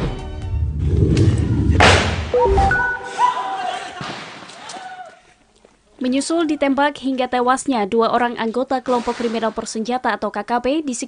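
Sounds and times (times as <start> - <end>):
news jingle held notes: 2.4 - 3.6.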